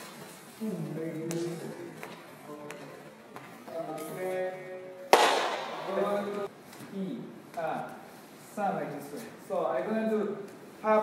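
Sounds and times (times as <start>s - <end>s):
loud sharp crack: 5.1s - 6.1s.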